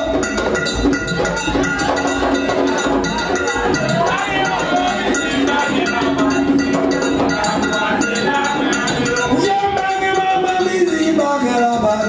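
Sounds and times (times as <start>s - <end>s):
metal percussion beat: 0.0s - 12.0s
voices singing held notes: 1.6s - 12.0s.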